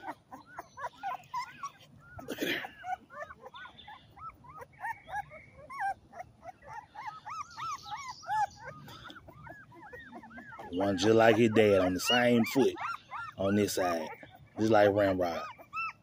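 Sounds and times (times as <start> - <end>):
puppy whimpering squeaks: 0.0 - 16.0.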